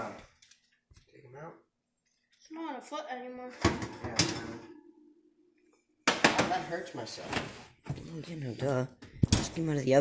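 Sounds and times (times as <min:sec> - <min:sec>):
metal baking tray clank: 0:03.6 - 0:04.8.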